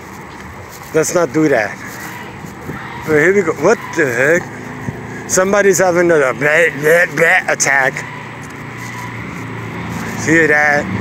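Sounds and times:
vehicle engine running: 0.0 - 11.0.

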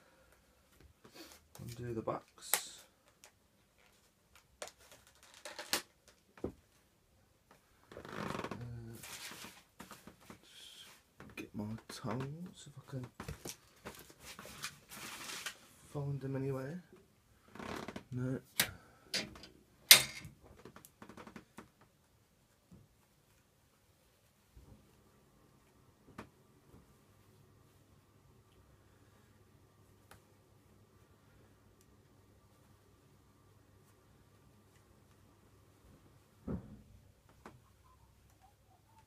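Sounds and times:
plastic tub and packing rustling: 13.0 - 15.6.

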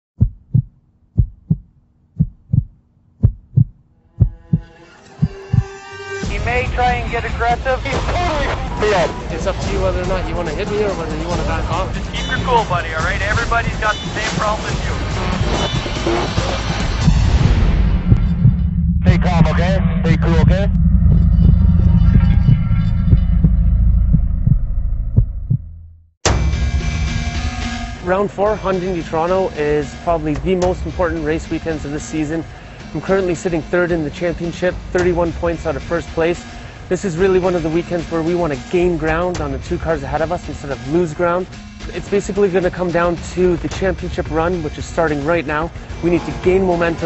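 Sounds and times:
heartbeat thumps: 0.2 - 5.7, 11.3 - 25.9
deep throbbing bass rumble: 0.2 - 27.5, 43.6 - 47.0
music: 4.0 - 24.6, 26.2 - 47.0.

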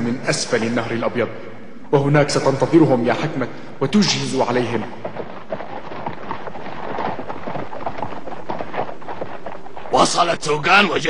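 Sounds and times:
horses' hooves galloping: 4.2 - 10.4.

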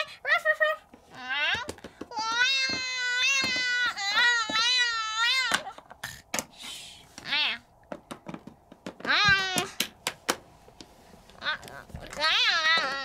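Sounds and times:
plastic toys on wooden floor: 0.0 - 13.0.

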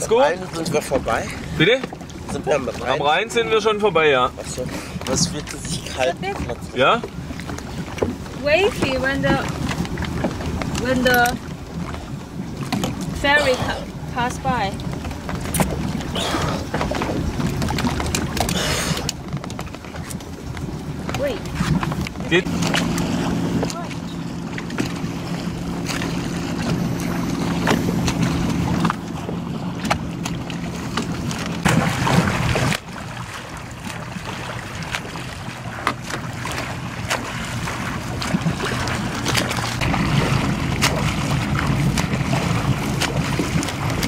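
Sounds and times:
boat engine humming: 0.0 - 44.0
swimming strokes splashing: 0.0 - 44.0
water rushing: 0.0 - 44.0.

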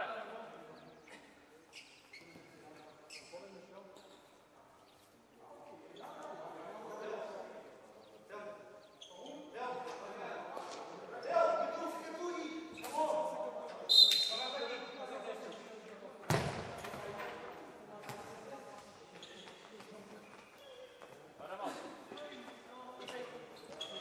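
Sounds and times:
shrill referee's whistle blast: 13.9 - 14.6.

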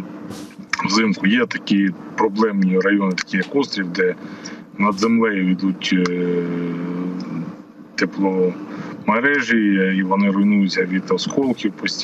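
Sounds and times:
man saying uhh: 0.8 - 1.4.

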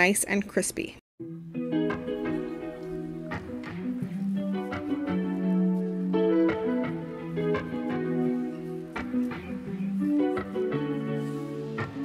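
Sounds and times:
instrumental music with plucked melody: 1.2 - 12.0.

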